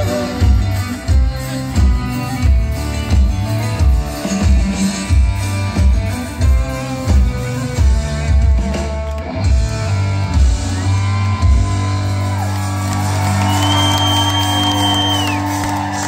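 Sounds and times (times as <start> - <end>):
long high whistle: 13.4 - 15.6.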